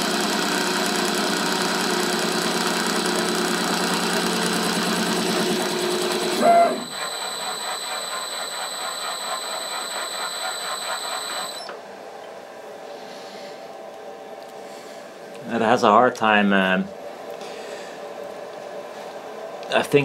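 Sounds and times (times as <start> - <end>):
machine running: 0.0 - 11.8
steady high whine: 2.1 - 12.8.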